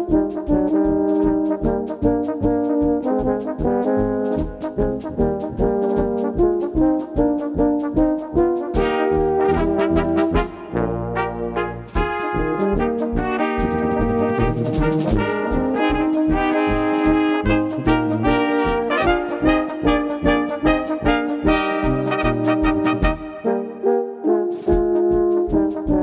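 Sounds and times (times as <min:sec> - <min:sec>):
brass band playing polka: 0:00.0 - 0:26.0.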